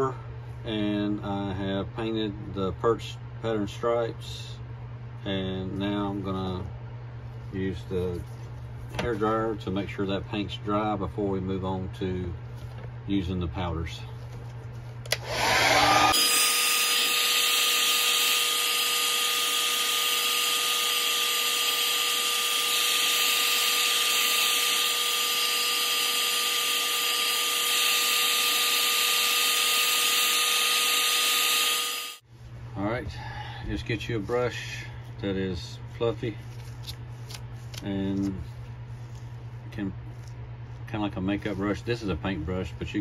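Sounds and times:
hair dryer blowing: 15.1 - 32.2.

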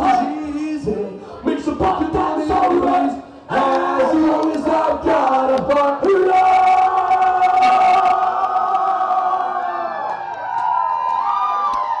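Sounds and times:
crowd cheering and whooping: 6.8 - 12.0.

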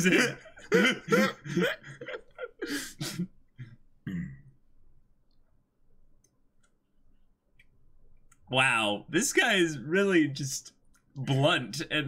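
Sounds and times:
person clearing throat: 4.0 - 4.5.

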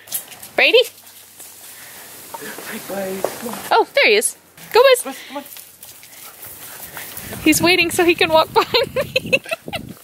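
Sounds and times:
outdoor background noise: 0.0 - 10.0
woman calling a dog: 0.6 - 1.0, 3.6 - 5.2, 7.3 - 8.7.

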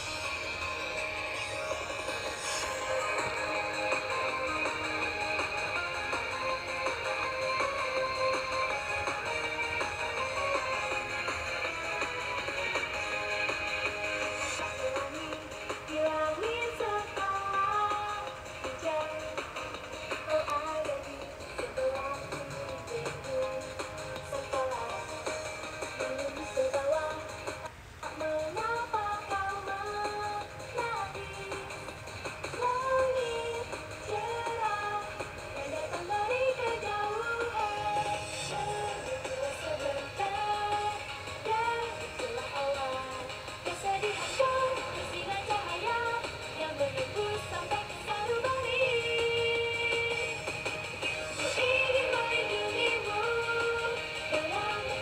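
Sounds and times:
pop song with singing: 0.0 - 55.0.

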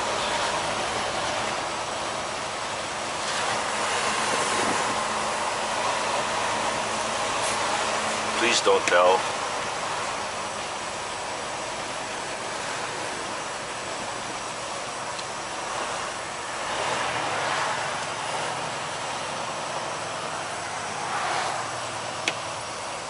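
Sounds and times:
tyres hissing on wet pavement: 0.0 - 22.1
truck engine running: 0.0 - 23.0.

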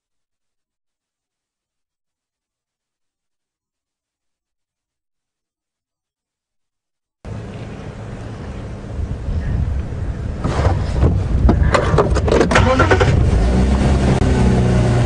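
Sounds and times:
vehicle engine running: 7.3 - 15.0
knocks and rattles: 10.5 - 12.6.

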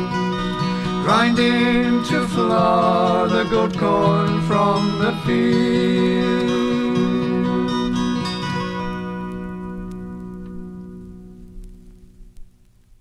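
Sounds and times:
acoustic guitar chord ringing: 0.0 - 12.3
record surface clicks: 8.2 - 13.0.

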